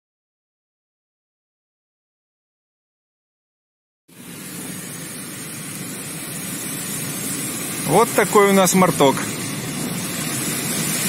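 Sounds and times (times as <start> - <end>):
car cabin road and engine noise: 7.7 - 11.0.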